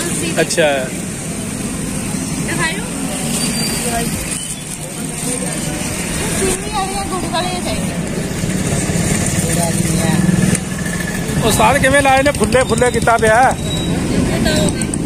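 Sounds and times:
motorcycle engine running: 0.0 - 15.0
people talking: 2.5 - 8.5, 9.2 - 10.6, 11.2 - 15.0.

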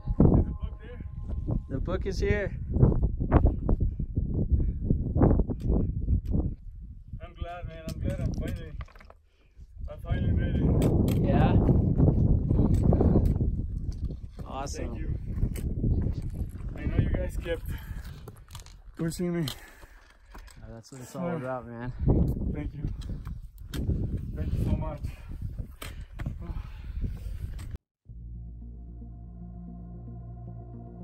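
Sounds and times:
people talking: 20.7 - 21.9.

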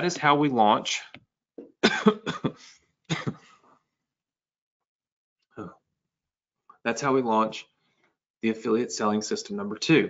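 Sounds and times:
man coughing: 1.7 - 3.6.

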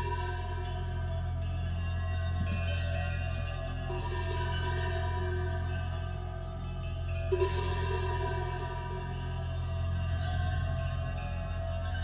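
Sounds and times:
ringing bells: 0.0 - 12.0
steady low drone: 0.0 - 12.0.

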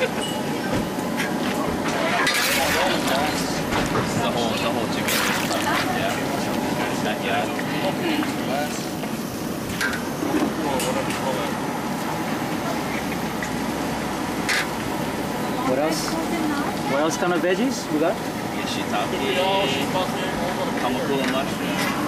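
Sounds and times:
background chatter: 0.0 - 22.0.

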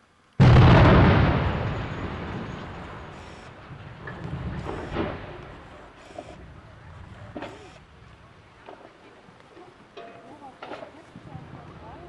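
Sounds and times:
loud explosion bang: 0.4 - 5.6
deep rumble: 0.4 - 8.7.

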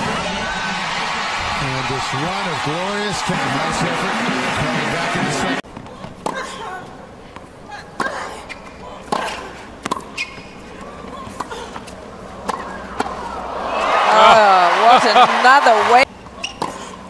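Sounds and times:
players grunting: 0.0 - 5.6, 13.5 - 16.0
tennis ball hits and bounces: 9.0 - 10.4.

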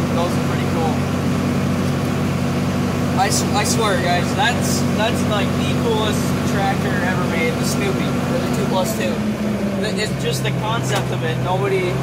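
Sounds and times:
tractor diesel engine drone: 0.0 - 12.0.

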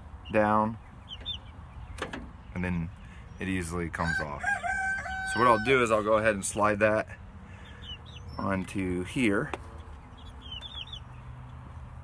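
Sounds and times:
bird chirping: 0.0 - 4.2, 7.4 - 11.8.

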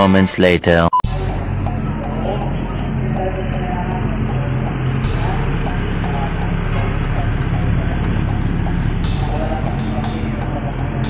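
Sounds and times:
background music: 1.0 - 11.0
vehicle engine and road hum: 1.1 - 11.0.

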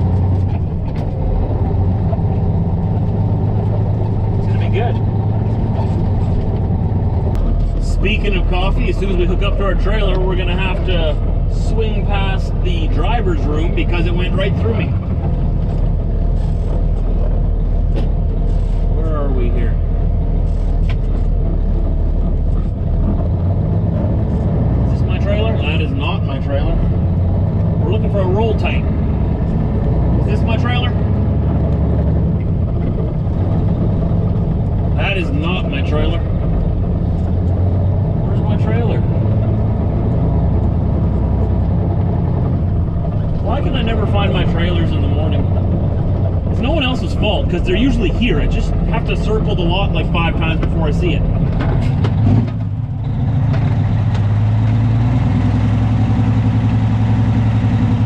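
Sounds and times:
truck diesel engine running: 0.0 - 58.0.

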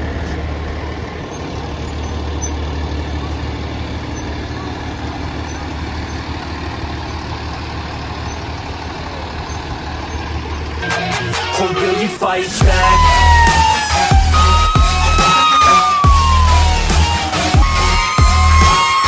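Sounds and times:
fire engine diesel engine: 0.0 - 19.0.

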